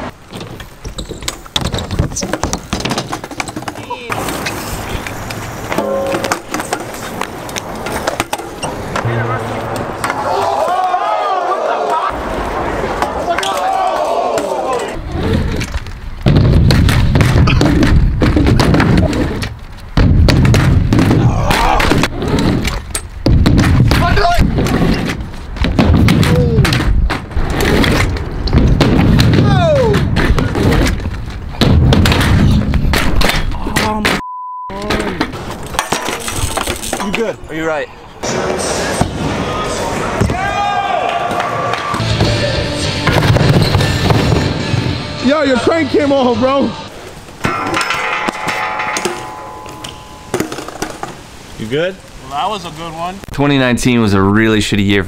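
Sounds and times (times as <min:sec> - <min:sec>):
bikes knocking and clattering: 0:00.0 - 0:11.0, 0:12.9 - 0:34.2, 0:34.8 - 0:45.1, 0:46.9 - 0:51.8
bike tyres rolling on ramps: 0:00.0 - 0:33.6.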